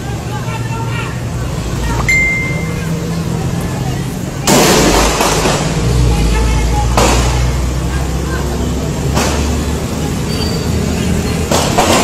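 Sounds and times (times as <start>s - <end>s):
faint voices: 0.0s - 12.0s
vehicle driving rumble: 0.0s - 12.0s.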